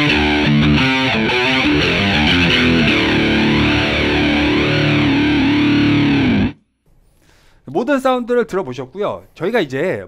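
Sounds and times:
distorted electric guitar with flanger: 0:00.0 - 0:06.6.

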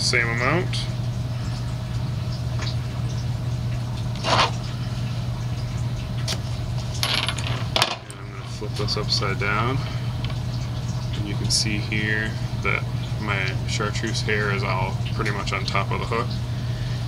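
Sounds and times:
steady low hum: 0:00.0 - 0:17.0
small metal tools clinking: 0:07.0 - 0:08.2.

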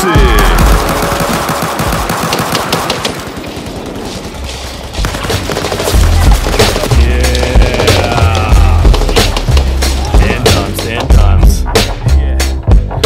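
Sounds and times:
automatic gunfire: 0:00.4 - 0:04.0
bass-heavy beat: 0:05.9 - 0:13.0.

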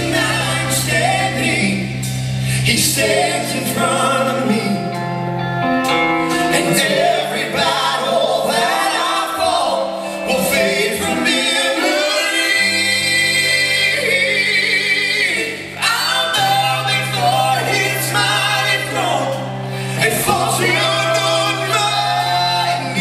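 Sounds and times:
drums: 0:00.0 - 0:05.2, 0:05.8 - 0:23.0
electric guitar: 0:00.0 - 0:23.0
gospel group singing: 0:00.0 - 0:23.0
keyboards: 0:00.0 - 0:23.0
low bass notes: 0:00.0 - 0:23.0.

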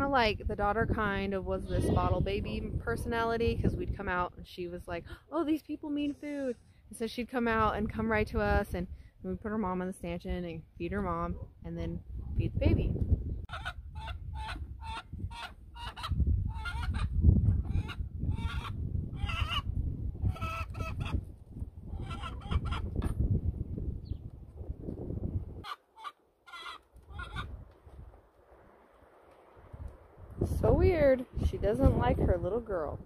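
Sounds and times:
wind rumble on microphone: 0:00.0 - 0:05.3, 0:07.3 - 0:25.7, 0:27.0 - 0:33.0
chickens clucking: 0:13.5 - 0:21.2, 0:21.9 - 0:23.2, 0:25.6 - 0:27.6.

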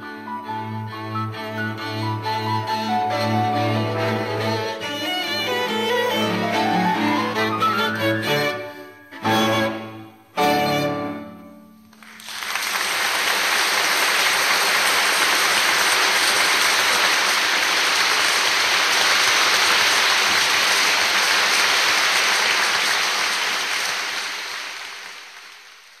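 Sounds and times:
audience applauding: 0:11.8 - 0:26.0.

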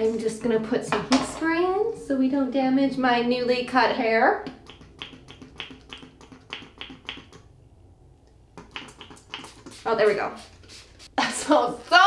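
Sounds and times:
spray bottle squirts: 0:08.6 - 0:11.1.

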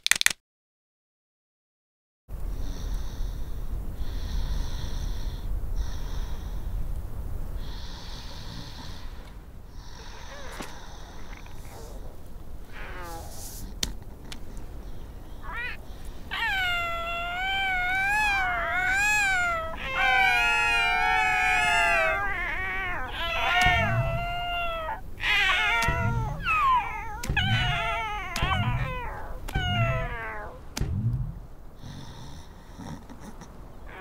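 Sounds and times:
cartoon seal pups calling: 0:15.4 - 0:31.4
soft low thumps: 0:23.1 - 0:32.2.

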